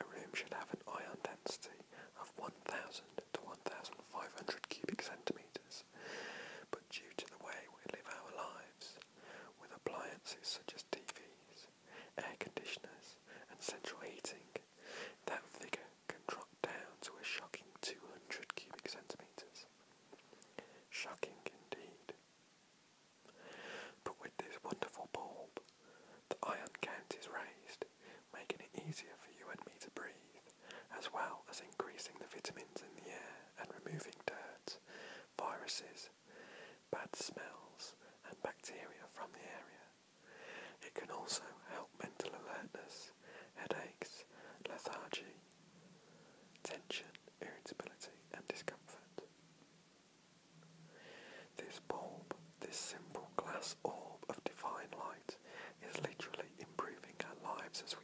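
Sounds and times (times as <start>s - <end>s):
man whispering: 0.0s - 6.0s, 6.6s - 19.8s, 20.4s - 22.2s, 23.3s - 45.6s, 46.2s - 49.3s, 51.5s - 58.0s.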